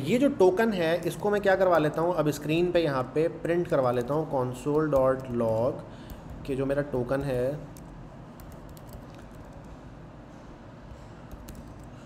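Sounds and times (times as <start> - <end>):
typing on computer keyboard: 7.2 - 9.7, 11.3 - 12.0.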